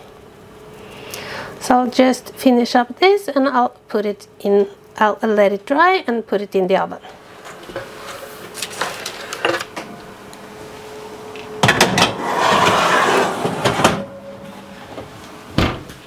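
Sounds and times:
metal tray scraping and clattering: 11.8s - 14.7s.

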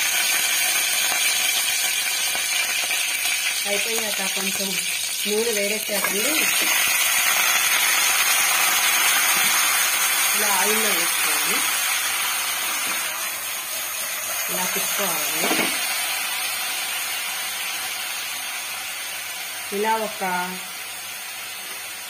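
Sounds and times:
vegetables sizzling in hot oil: 0.0s - 22.0s.

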